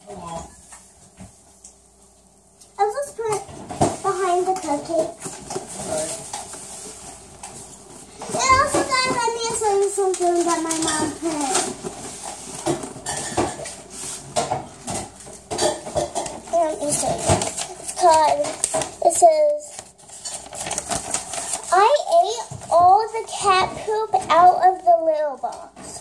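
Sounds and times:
kitchen items clinking and knocking: 0:07.4 - 0:19.2.

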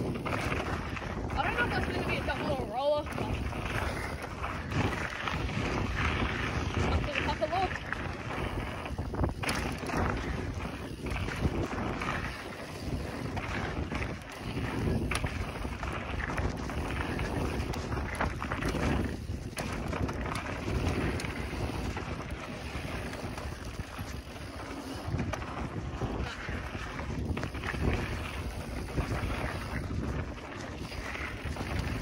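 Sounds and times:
bike clicks and rattles: 0:00.0 - 0:32.0
steady rumble: 0:00.0 - 0:32.0
wind rushing over microphone: 0:00.0 - 0:32.0.

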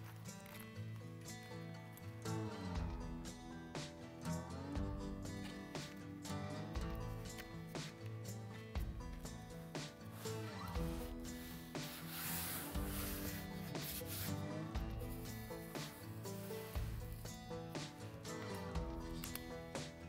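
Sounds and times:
hand rubbing membrane: 0:00.0 - 0:04.0, 0:04.8 - 0:20.0
background music with bass line: 0:00.0 - 0:20.0.

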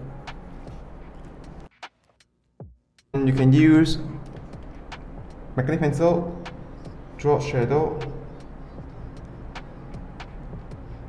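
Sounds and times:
steady low hum: 0:00.0 - 0:01.7, 0:03.2 - 0:11.0.

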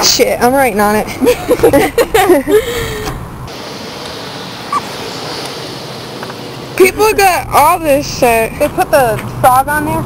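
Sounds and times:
person laughing: 0:01.2 - 0:03.0
outdoor hiss: 0:02.6 - 0:07.2.

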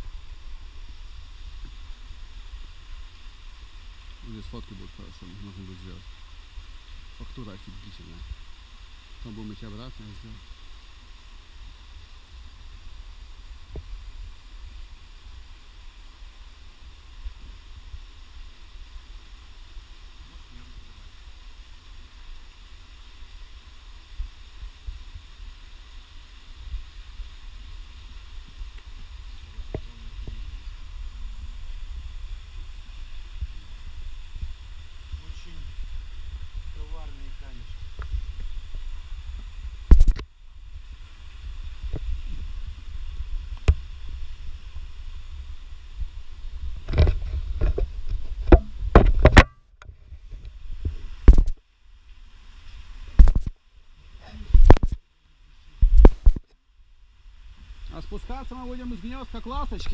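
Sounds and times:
wind noise on microphone: 0:00.0 - 0:08.7, 0:24.0 - 0:51.6, 0:52.5 - 0:53.6, 0:54.4 - 0:55.0, 0:55.8 - 0:56.5
camera handling rumble: 0:39.9 - 0:40.3.

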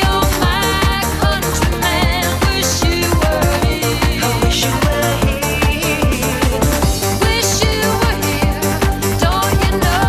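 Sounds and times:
electronic dance music: 0:00.0 - 0:10.0
steady kick-drum beat: 0:00.0 - 0:10.0
sustained synthesizer tones: 0:00.0 - 0:10.0.

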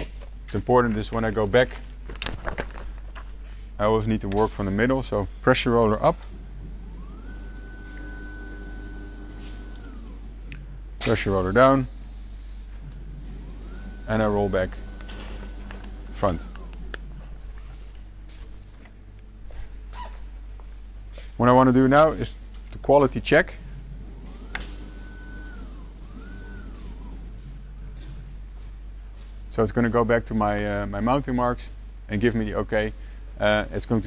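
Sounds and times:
steady low hum: 0:00.0 - 0:34.0
electric motor whine: 0:06.7 - 0:10.5, 0:11.3 - 0:18.6, 0:23.9 - 0:27.7.

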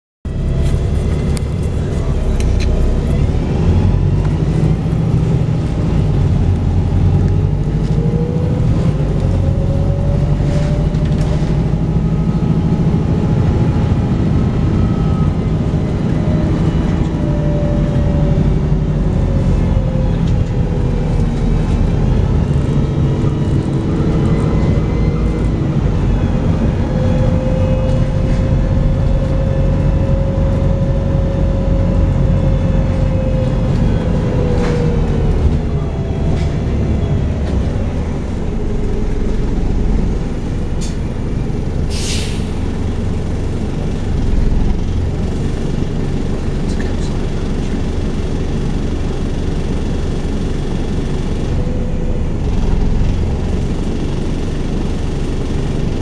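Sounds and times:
engine whine rising and falling: 0:00.3 - 0:46.5
bus diesel engine rumble: 0:00.3 - 0:56.0.

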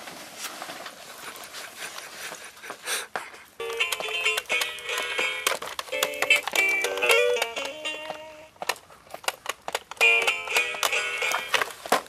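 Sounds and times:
toy guitar buttons clicking: 0:03.6 - 0:11.6.

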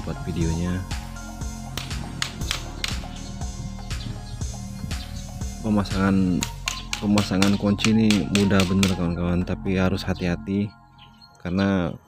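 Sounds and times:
background music: 0:00.0 - 0:12.0
hammer striking nail into wood: 0:06.4 - 0:09.0.

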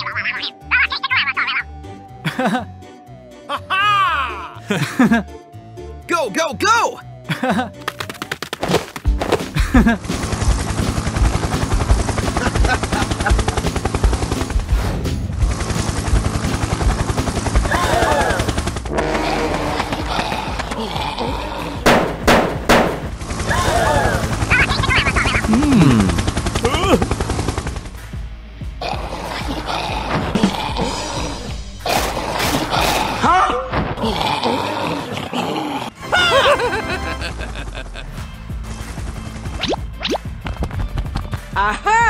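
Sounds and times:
background music: 0:00.0 - 0:42.0
cartoon machine-gun fire: 0:10.0 - 0:14.6, 0:15.6 - 0:19.8, 0:21.8 - 0:27.9
swooping pitched sounds: 0:23.4 - 0:27.0.

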